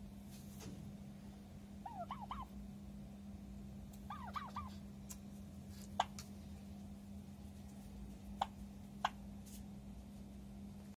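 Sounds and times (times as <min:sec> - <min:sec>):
turkey gobbling: 0:01.8 - 0:02.6, 0:04.0 - 0:04.8, 0:06.0 - 0:06.2, 0:08.3 - 0:09.2.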